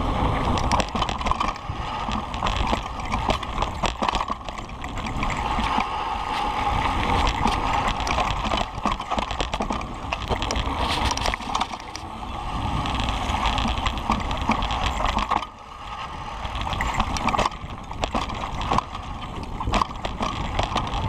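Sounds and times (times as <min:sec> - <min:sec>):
bike knocking and rattling: 0:00.0 - 0:21.0
tyres rumbling on dirt: 0:00.0 - 0:21.0
wind on microphone: 0:00.0 - 0:21.0.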